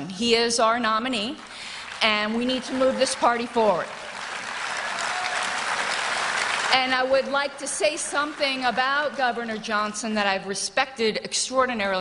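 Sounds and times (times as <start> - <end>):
audience applauding: 1.2 - 9.9.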